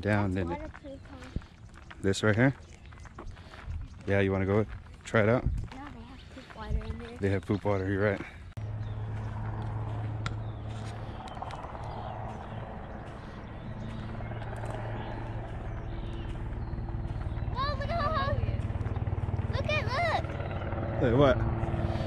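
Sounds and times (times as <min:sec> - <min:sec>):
helicopter drone: 0:08.3 - 0:22.0.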